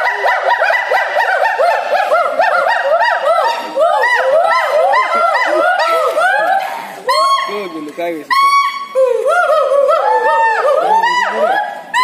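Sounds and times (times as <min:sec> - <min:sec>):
gibbons whooping calls: 0:00.0 - 0:12.0.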